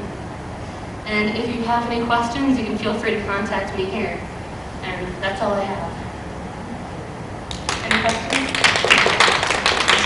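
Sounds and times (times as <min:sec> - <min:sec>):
small group applauding: 0:07.5 - 0:10.0.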